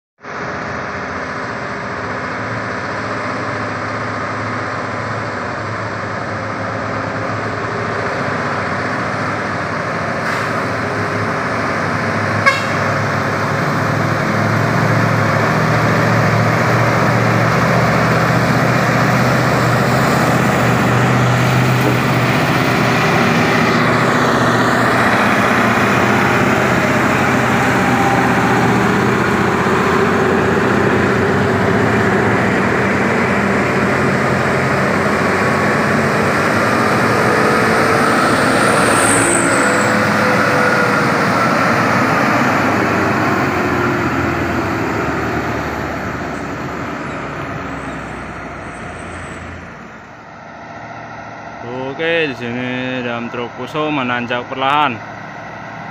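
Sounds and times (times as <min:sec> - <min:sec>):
diesel trucks rumbling uphill: 0:00.2 - 0:55.9.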